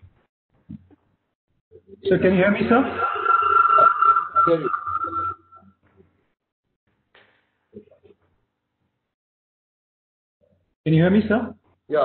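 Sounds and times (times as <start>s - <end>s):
high whistling feedback tone: 2.4s - 5.7s
man speaking over call: 3.8s - 5.2s.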